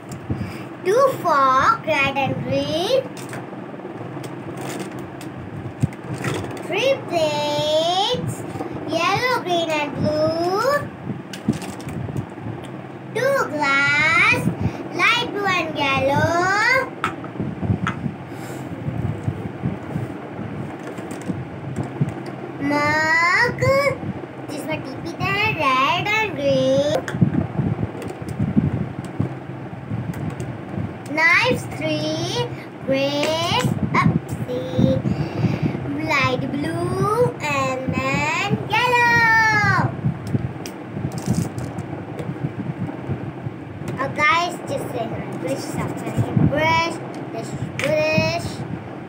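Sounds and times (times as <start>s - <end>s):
low uneven rumble: 0.0s - 49.0s.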